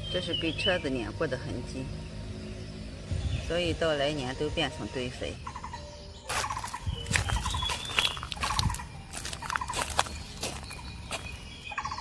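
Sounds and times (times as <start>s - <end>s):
bird trilling: 4.6s - 12.0s
footsteps crunching on dry leaves: 6.2s - 12.0s.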